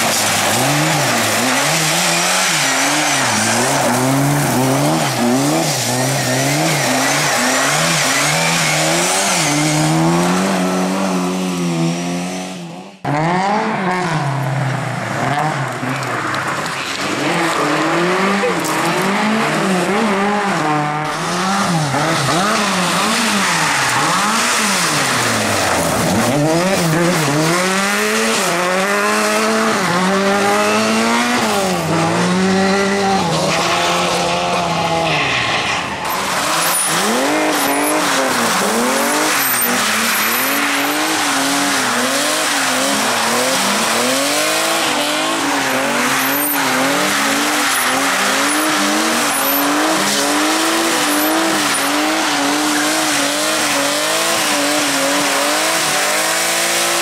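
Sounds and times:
tyre squeal: 0.0s - 11.1s, 32.5s - 54.8s
tyres sliding on gravel: 0.0s - 12.2s, 14.2s - 56.2s
rally car engine revving: 0.0s - 57.0s.

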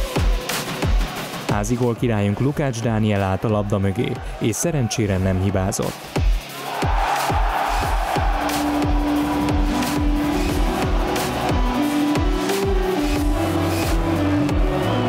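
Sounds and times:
electronic music with drum beat: 0.0s - 15.0s.

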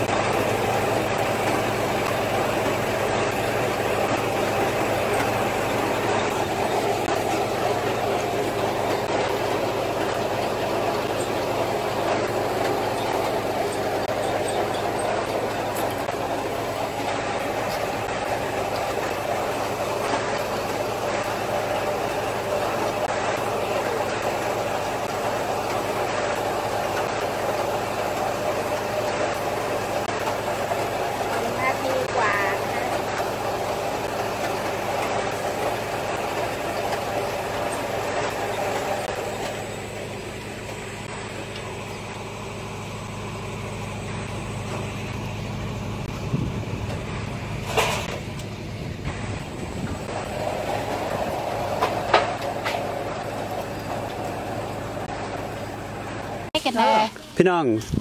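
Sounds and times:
machinery humming: 0.0s - 58.0s.

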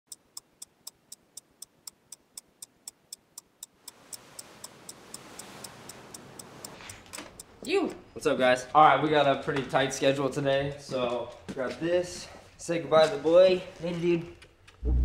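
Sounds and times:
clock-like ticking: 0.1s - 8.1s.

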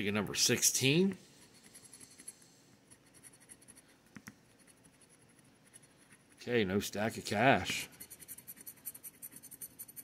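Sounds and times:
scratching lottery ticket: 1.4s - 3.9s, 4.5s - 6.5s, 7.2s - 10.0s.

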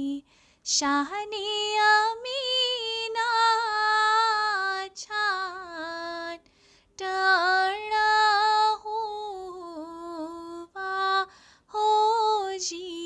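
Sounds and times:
woman singing a hymn: 0.0s - 6.4s, 7.0s - 13.0s
quick breath: 6.5s - 6.9s, 11.3s - 11.7s.

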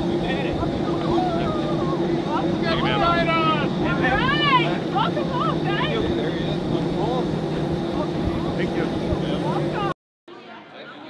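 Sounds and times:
jet airliner engine hum and whine: 0.0s - 10.0s
voices: 0.0s - 11.0s.

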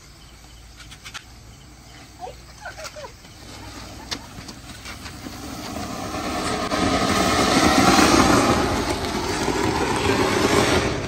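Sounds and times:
firework crackling hiss: 0.0s - 11.0s.

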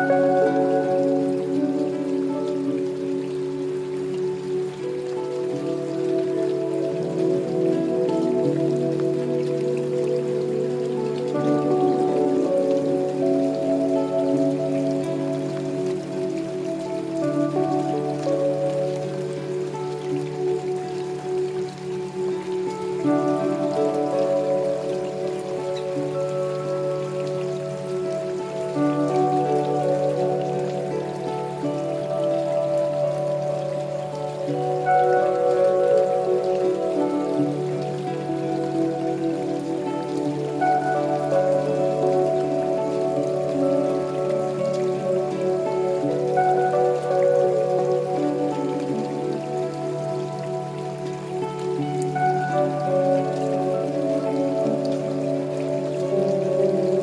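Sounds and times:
slow new-age music: 0.0s - 57.0s
steady rain falling: 0.0s - 57.0s.

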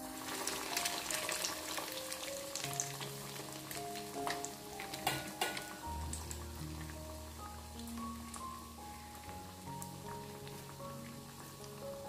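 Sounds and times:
background music: 0.0s - 12.0s
food sizzling in hot oil: 0.0s - 12.0s.

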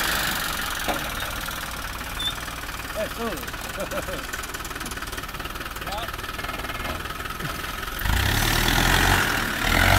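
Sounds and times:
vehicle engine idling and revving: 0.0s - 9.9s.

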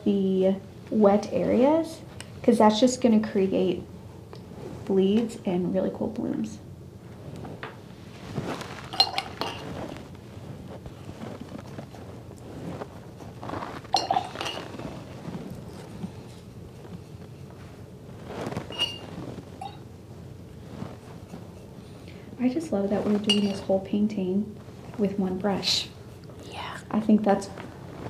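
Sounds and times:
paintbrushes clinking on jars: 8.9s - 9.6s, 13.9s - 14.7s, 18.7s - 19.0s, 19.6s - 19.8s, 23.2s - 23.7s.

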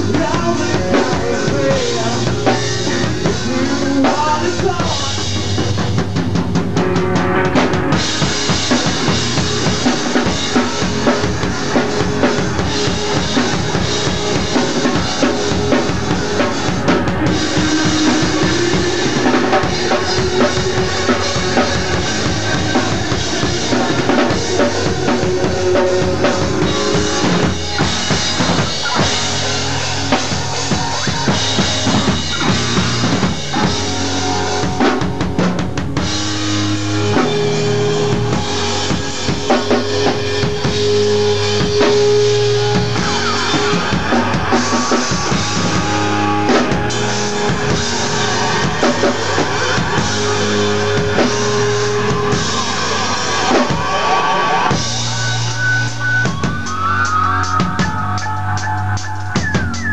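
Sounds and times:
drum kit beat: 0.0s - 59.9s
electric guitar: 0.0s - 59.9s.

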